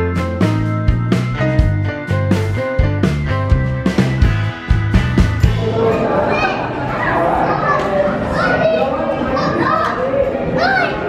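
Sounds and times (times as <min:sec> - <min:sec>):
young children calling out and chattering: 0:05.6 - 0:11.0.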